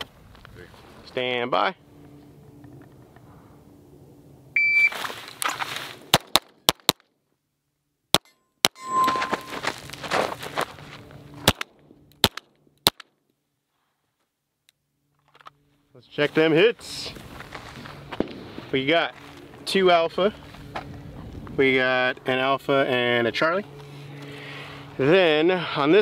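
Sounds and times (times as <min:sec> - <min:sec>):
shot timer beep: 0:04.6 - 0:04.9, 0:08.7 - 0:09.6
steel target ringing: 0:08.2 - 0:09.7.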